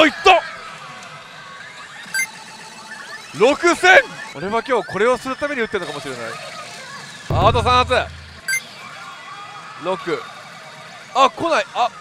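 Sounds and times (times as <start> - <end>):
electronic soundtrack: 7.3 - 8.6.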